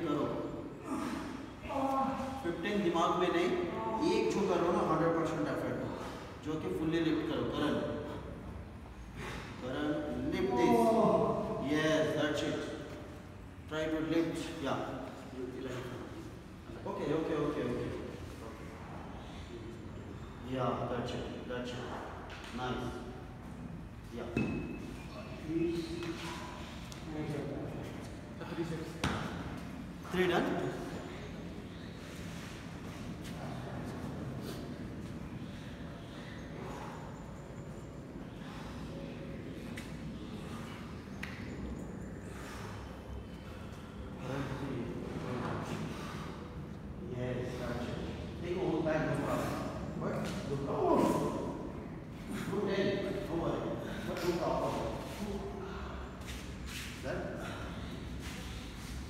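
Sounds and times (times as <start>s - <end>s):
men talking: 0.0s - 1.2s, 2.4s - 59.0s.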